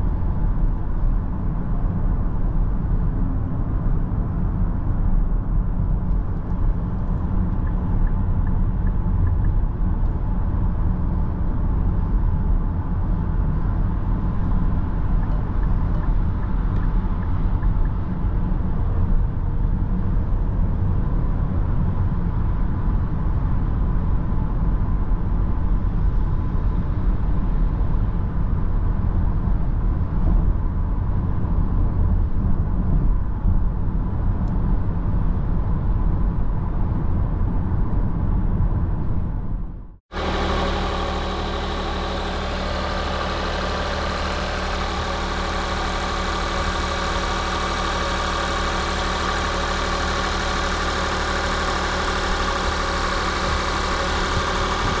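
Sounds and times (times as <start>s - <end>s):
road and tyre rumble in car cabin: 0.0s - 55.0s
car engine idling: 40.1s - 55.0s.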